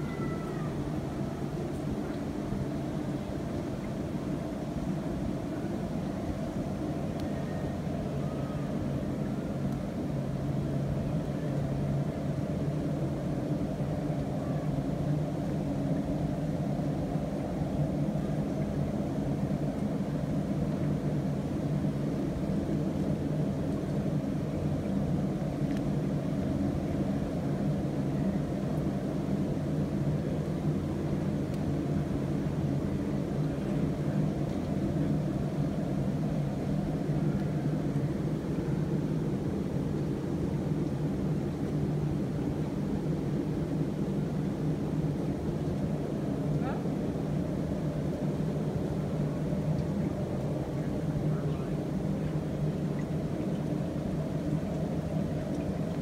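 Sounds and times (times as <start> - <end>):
low mechanical hum: 0.0 - 56.0.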